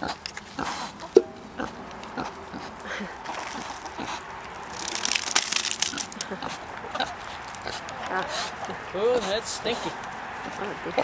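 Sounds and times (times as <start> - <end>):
crackling: 0.0 - 8.8
pig grunting: 6.2 - 10.0.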